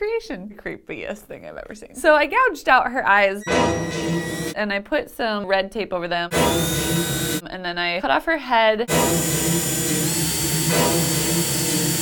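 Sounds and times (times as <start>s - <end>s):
cordless drill boring into plastic: 6.3s - 7.4s, 8.9s - 12.0s.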